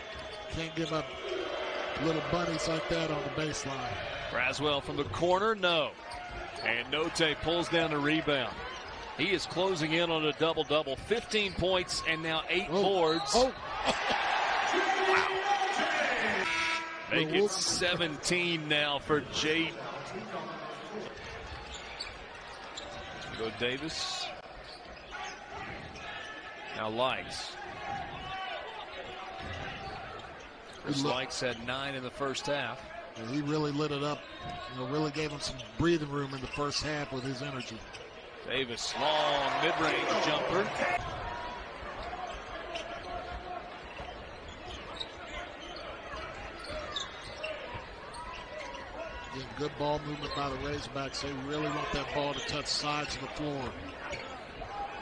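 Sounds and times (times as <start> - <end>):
arena crowd noise: 0.0 - 55.0.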